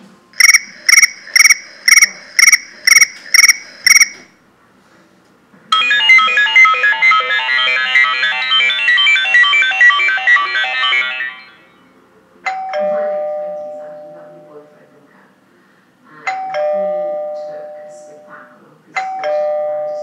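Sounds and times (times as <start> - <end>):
trilling phone chirp: 0.4 - 4.2
melodic ringtone: 5.8 - 11.8.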